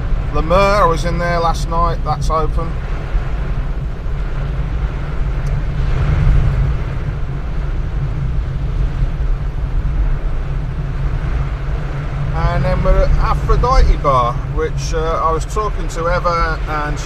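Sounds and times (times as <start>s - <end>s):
engine and tyre rumble: 0.0s - 17.0s
rain and wet road spray hiss: 0.0s - 17.0s.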